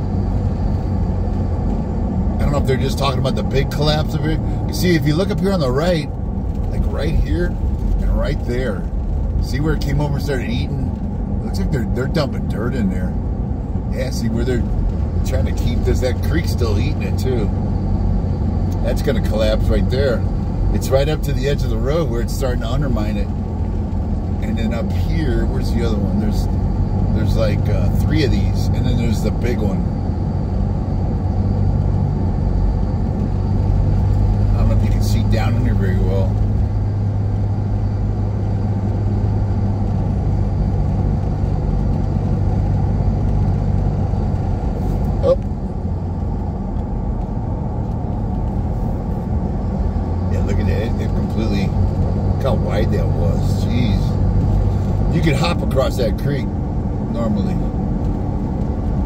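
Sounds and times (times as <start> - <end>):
car engine and road drone: 0.0 - 59.0.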